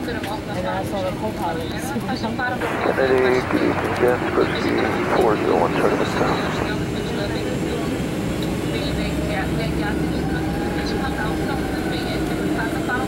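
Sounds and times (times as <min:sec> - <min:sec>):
aircraft engines idling: 0:02.6 - 0:13.0.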